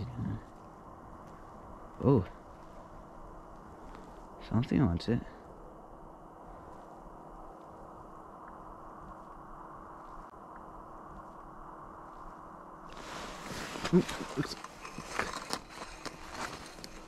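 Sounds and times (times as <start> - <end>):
faint low hiss: 0.0 - 17.0
thin steady hum: 0.0 - 17.0.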